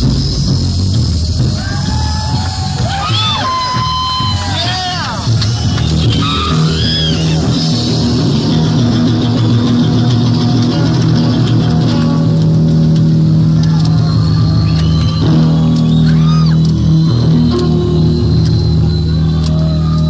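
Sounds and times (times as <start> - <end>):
live hard rock band: 0.0 - 20.0.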